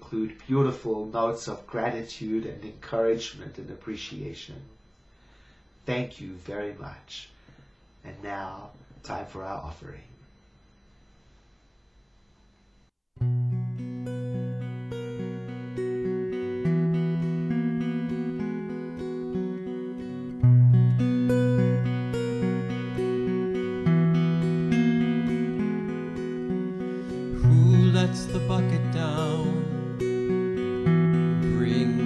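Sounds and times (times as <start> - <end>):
acoustic guitar playing: 13.2 - 32.0
man singing: 27.3 - 30.0, 31.4 - 32.0.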